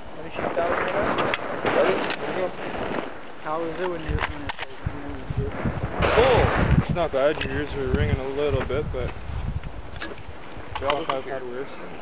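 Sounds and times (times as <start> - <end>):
wind noise on microphone: 0.0 - 12.0
muffled voices: 0.2 - 9.2, 10.0 - 12.0.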